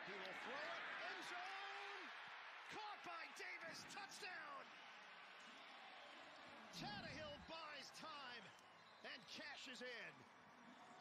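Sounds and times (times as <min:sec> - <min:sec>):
stadium crowd noise: 0:00.0 - 0:11.0
commentator speaking: 0:06.8 - 0:10.1.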